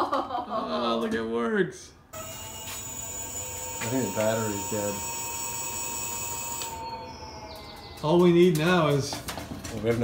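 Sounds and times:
electric motor whining: 0:02.2 - 0:08.0.

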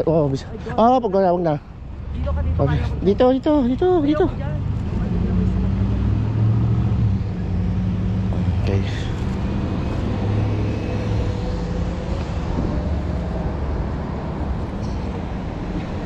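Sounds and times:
car engine and tyres rumbling: 0:00.0 - 0:16.0.

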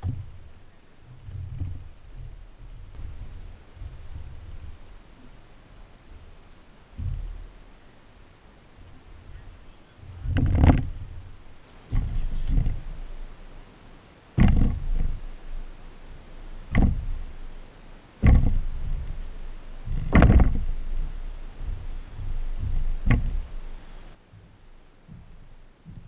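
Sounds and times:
wooden planks knocking and thudding: 0:00.0 - 0:08.2, 0:08.8 - 0:13.6, 0:14.3 - 0:26.0.

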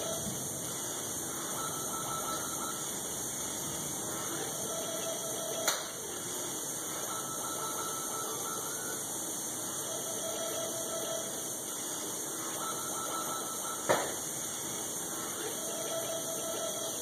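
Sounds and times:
steady hiss: 0:00.0 - 0:01.8, 0:02.4 - 0:04.7, 0:10.7 - 0:12.7, 0:13.5 - 0:15.7.

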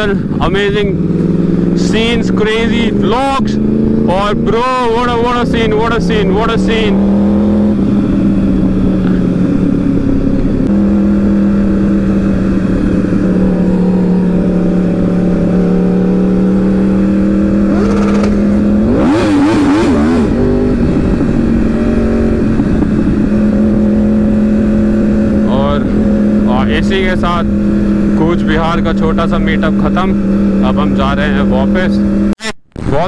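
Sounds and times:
motorcycle engine cruising: 0:00.0 - 0:33.0.

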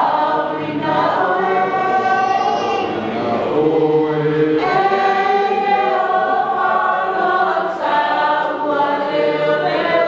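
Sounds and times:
group singing held notes: 0:00.0 - 0:10.0.

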